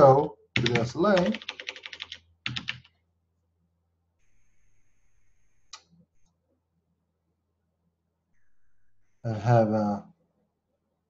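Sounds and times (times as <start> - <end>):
computer keyboard keystrokes: 0.6 - 2.9
faint high whine: 8.3 - 9.9.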